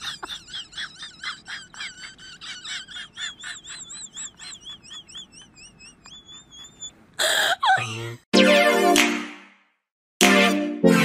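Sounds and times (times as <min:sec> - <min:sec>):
rapid high chirping: 0:01.9 - 0:07.8.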